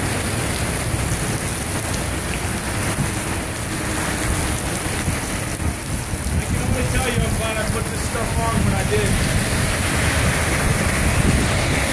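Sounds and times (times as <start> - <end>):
torrential rain pouring: 0.0 - 11.9
wind buffeting microphone: 2.6 - 11.9.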